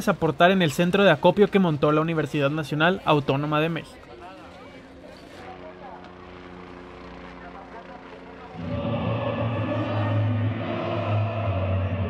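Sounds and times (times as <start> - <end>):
steady mechanical drone: 3.9 - 12.0
music: 8.6 - 12.0.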